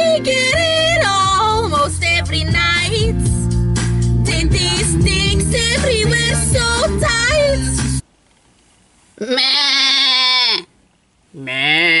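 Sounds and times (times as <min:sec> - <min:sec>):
person crying out wavering: 0:09.2 - 0:10.7, 0:11.4 - 0:12.0.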